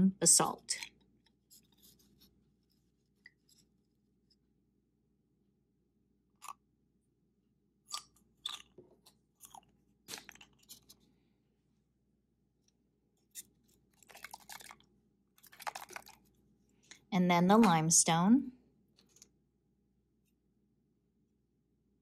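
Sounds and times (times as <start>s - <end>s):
vinegar pouring: 14.0s - 16.4s.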